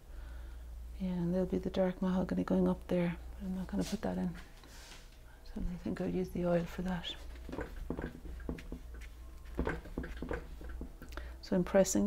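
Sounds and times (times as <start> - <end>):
paintbrush tapping on paper: 7.2 - 11.1.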